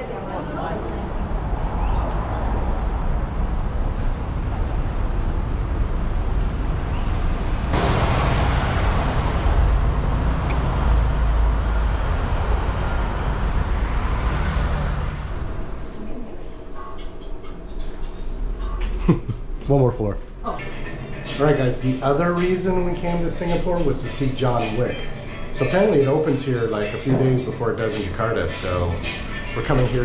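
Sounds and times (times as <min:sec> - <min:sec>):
heavy low rumble: 0:00.0 - 0:16.8
passing cars: 0:00.0 - 0:18.9.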